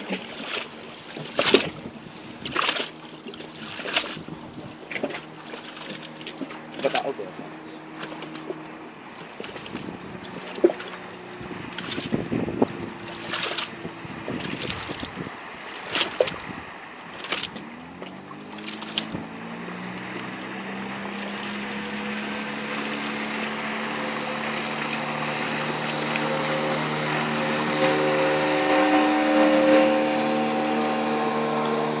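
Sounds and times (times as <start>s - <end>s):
outboard motor running: 0.0s - 32.0s.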